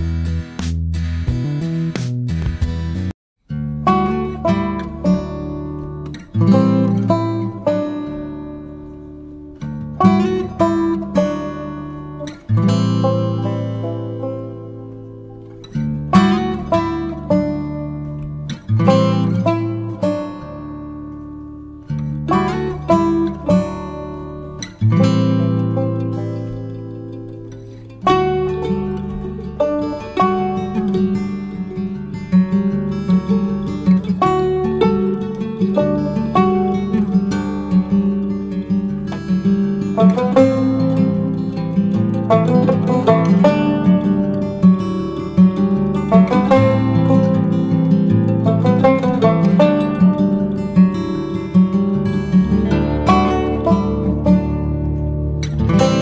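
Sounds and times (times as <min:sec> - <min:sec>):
plucked acoustic guitar: 0:00.0 - 0:56.0.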